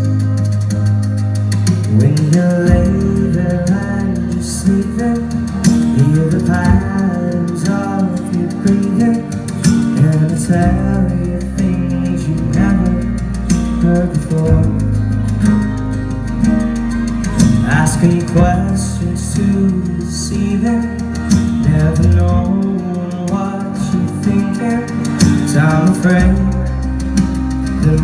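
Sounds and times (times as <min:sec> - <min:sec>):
acoustic guitar playing slow song: 0:00.0 - 0:28.0
held low bass notes: 0:00.0 - 0:28.0.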